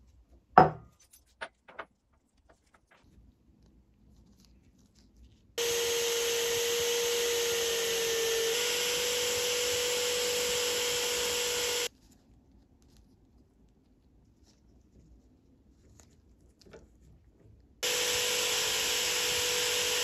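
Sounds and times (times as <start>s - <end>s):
abrasive wheel grinding screw: 5.6s - 11.9s
drill whining: 5.6s - 11.9s, 17.8s - 20.0s.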